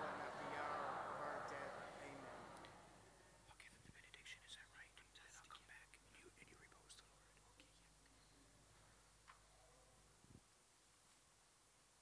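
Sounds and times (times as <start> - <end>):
person whispering: 3.4 - 8.1.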